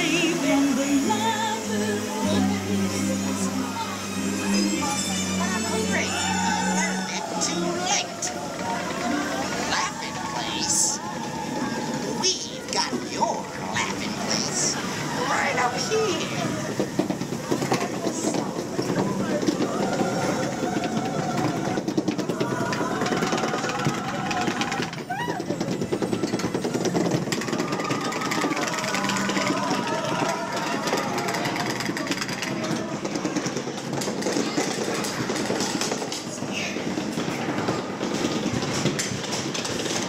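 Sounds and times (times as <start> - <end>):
voices: 0.0 - 40.0.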